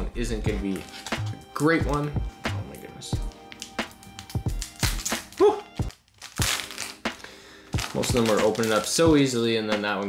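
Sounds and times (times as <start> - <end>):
background music: 0.0 - 10.0
foil wrapper crinkling and tearing: 0.7 - 2.2, 3.2 - 9.4.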